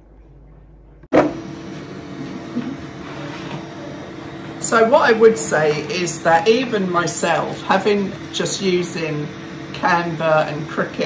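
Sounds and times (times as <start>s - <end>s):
printer fan hum: 1.0s - 11.0s.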